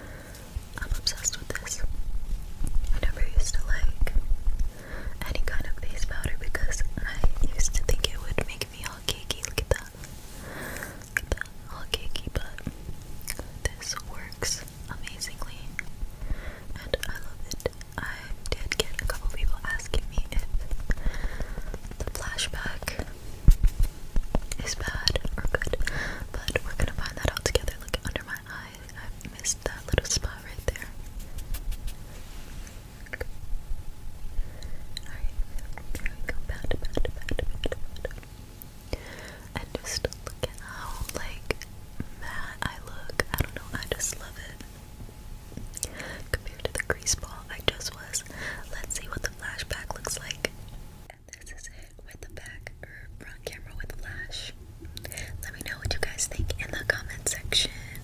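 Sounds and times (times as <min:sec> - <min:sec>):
person whispering: 0:00.8 - 0:01.9, 0:02.9 - 0:04.2, 0:11.2 - 0:12.7, 0:13.6 - 0:15.8, 0:22.0 - 0:23.1, 0:24.6 - 0:31.0, 0:39.6 - 0:41.6, 0:42.2 - 0:44.6.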